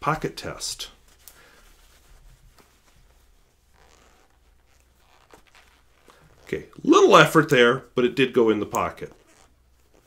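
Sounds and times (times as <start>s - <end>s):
shirt fabric rustling: 0.0s - 10.0s.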